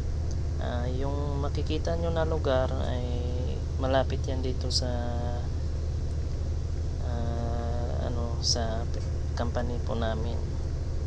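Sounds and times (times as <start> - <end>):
bus cabin low rumble: 0.0 - 11.0.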